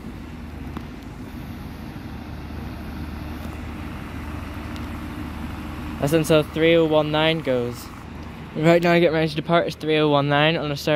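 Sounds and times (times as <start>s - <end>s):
train engine hum: 0.0s - 10.9s.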